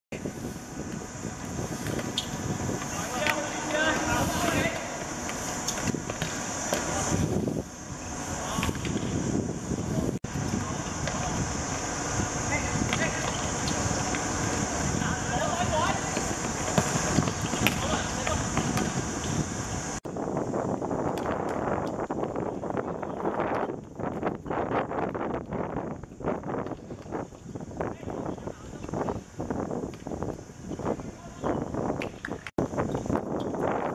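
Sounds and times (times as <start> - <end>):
wind buffeting microphone: 0.1 - 33.9
faint outdoor hiss: 0.2 - 33.9.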